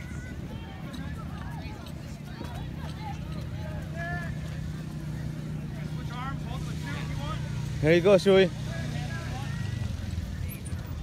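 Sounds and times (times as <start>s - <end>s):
distant voices of people: 0.0s - 11.0s.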